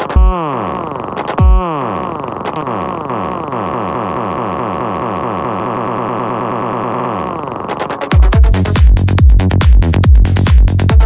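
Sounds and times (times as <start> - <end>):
heavy kick drum: 0.0 - 0.5, 1.4 - 1.7, 8.1 - 11.0.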